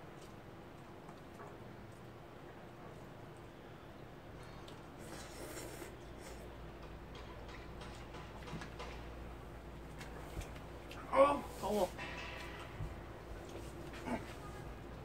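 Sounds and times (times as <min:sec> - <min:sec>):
low steady hum: 0:00.0 - 0:15.0
mouth noises eating: 0:04.4 - 0:06.6.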